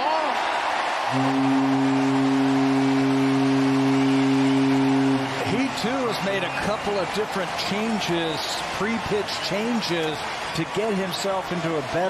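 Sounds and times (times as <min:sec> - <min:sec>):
crowd cheering: 0:00.0 - 0:12.0
deep foghorn-style horn blast: 0:01.1 - 0:06.2.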